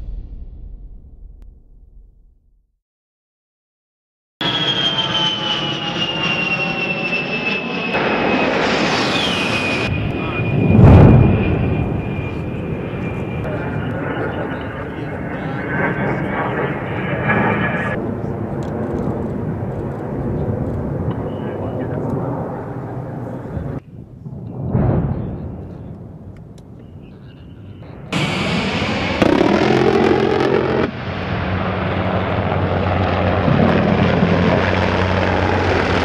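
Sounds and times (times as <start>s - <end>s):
loud blast with deep boom: 0.0s - 2.6s, 10.2s - 12.4s, 24.2s - 26.3s, 27.9s - 36.0s
jet engines whining: 4.4s - 23.8s, 25.3s - 36.0s.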